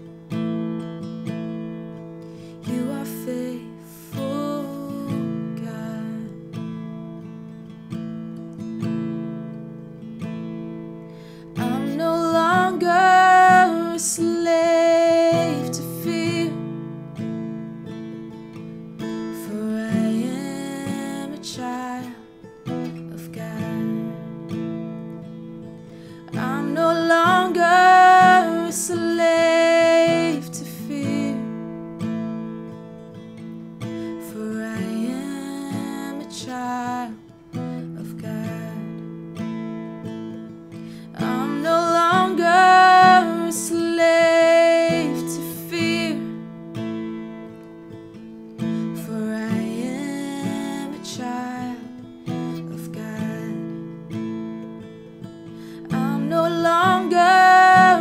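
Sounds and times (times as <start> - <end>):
strummed acoustic guitar: 0.0 - 58.0
woman singing: 2.6 - 7.0, 11.4 - 18.4, 19.0 - 32.7, 33.8 - 58.0.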